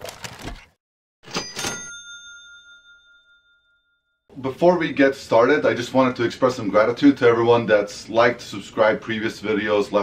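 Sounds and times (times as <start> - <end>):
cash register metallic strikes: 1.2 - 3.5
cash register bell ring: 1.2 - 4.1.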